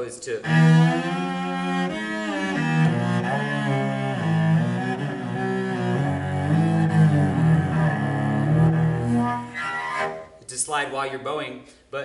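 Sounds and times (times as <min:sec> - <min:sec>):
bowed cello with pitch slides: 0:00.0 - 0:10.5.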